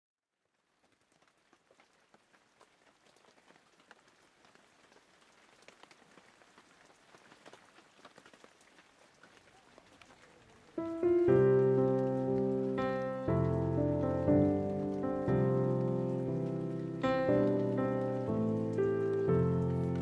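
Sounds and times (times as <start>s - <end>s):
dense patter of small clicks: 0.3s - 20.0s
music with held notes: 10.8s - 20.0s.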